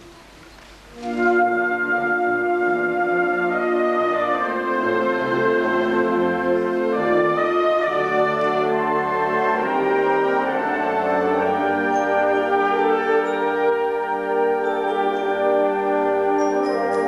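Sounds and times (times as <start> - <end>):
wind band sustained chords: 0.0 - 17.0.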